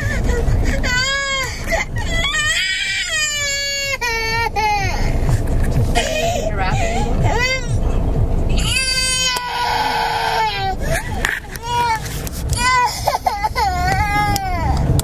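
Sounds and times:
toddler crying: 0.0s - 5.1s, 8.6s - 15.0s
car engine and road rumble: 0.0s - 15.0s.

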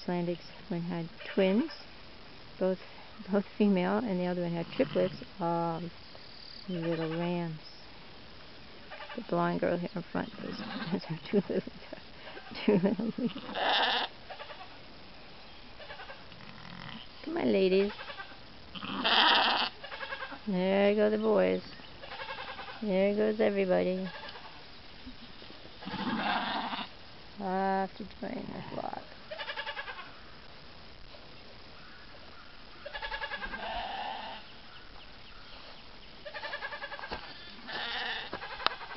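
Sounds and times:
sheep bleating: 10.2s - 11.0s, 13.2s - 14.8s, 15.8s - 17.2s, 17.8s - 20.4s, 25.8s - 26.9s, 29.3s - 30.1s, 32.8s - 34.4s, 36.2s - 38.9s.

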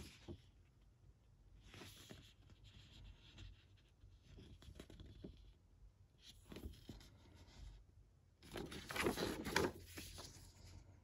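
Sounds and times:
paper rustling: 8.4s - 11.0s.

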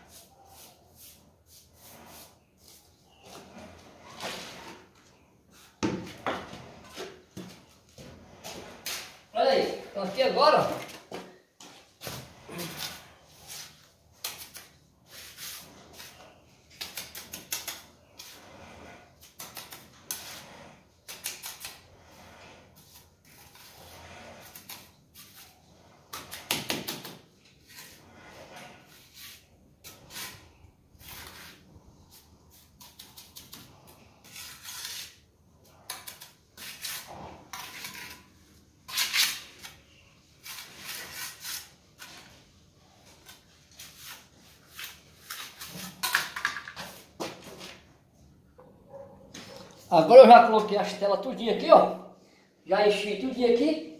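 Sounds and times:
trowel scraping and tapping mortar: 10.6s - 21.9s, 22.7s - 28.0s, 28.8s - 42.4s, 43.0s - 47.9s.

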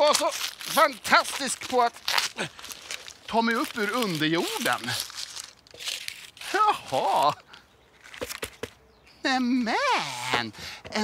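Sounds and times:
wrapping paper crinkling: 0.0s - 7.4s.

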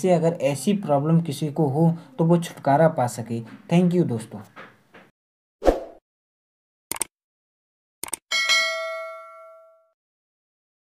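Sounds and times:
sharp clicks: 6.9s - 7.1s, 8.0s - 8.2s
notification bell ding: 8.3s - 10.0s.

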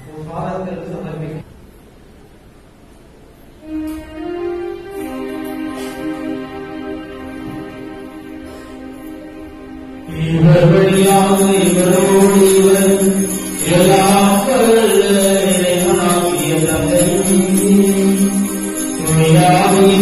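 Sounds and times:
person singing slow chant: 10.0s - 20.0s.

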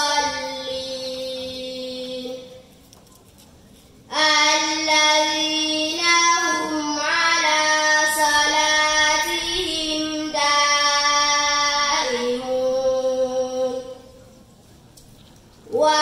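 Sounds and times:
girl chanting recitation: 0.0s - 2.7s, 4.1s - 14.2s, 15.7s - 16.0s.

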